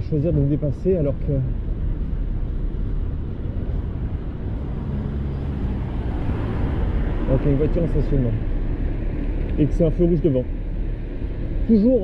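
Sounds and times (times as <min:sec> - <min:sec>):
bicycle riding rumble: 0:00.0 - 0:12.0
car engine hum: 0:00.0 - 0:12.0.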